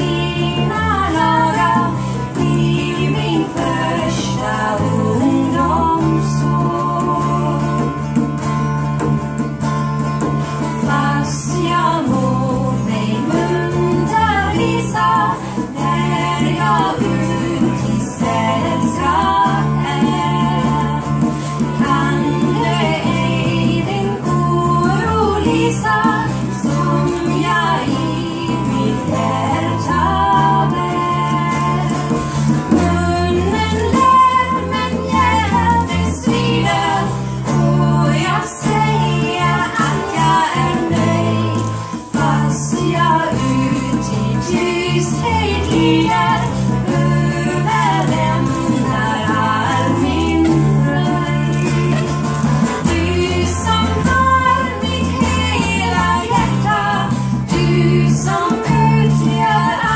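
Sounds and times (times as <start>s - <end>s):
woman singing a slow ballad: 0.0s - 8.1s, 10.8s - 52.0s
acoustic guitar accompaniment: 0.0s - 59.9s.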